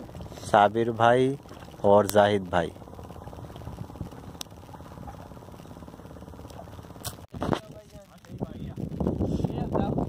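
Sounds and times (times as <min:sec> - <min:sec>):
boat engine running: 0:00.0 - 0:10.0.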